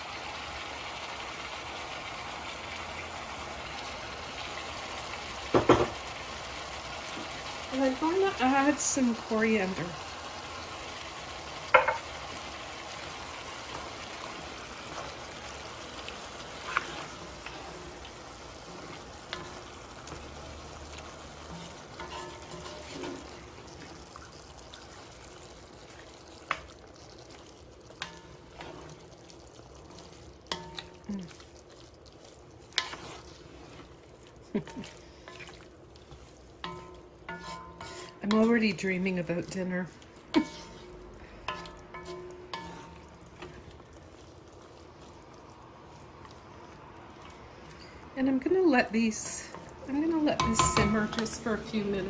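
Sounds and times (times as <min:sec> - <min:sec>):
vegetables sizzling in a pan: 0:00.0 - 0:52.0
wooden spoon knocking on pan: 0:05.5 - 0:06.0, 0:11.7 - 0:12.1, 0:50.3 - 0:51.4.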